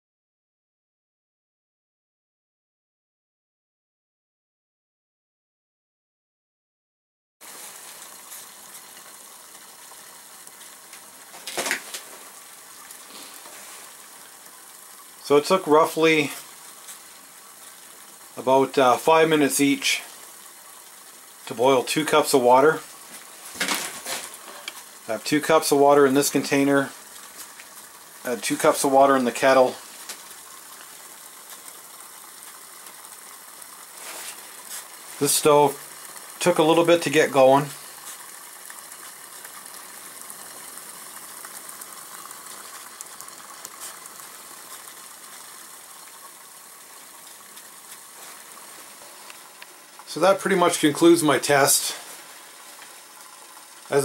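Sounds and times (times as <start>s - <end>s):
water boiling in a metal cup: 7.4s - 54.0s.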